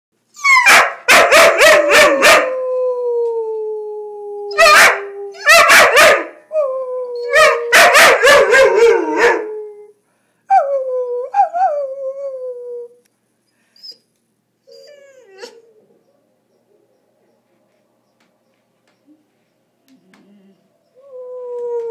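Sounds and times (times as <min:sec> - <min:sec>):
puppy barking: 0:00.6 - 0:02.5, 0:04.6 - 0:06.4, 0:07.3 - 0:09.4
long falling howls: 0:01.8 - 0:05.5, 0:20.1 - 0:21.9.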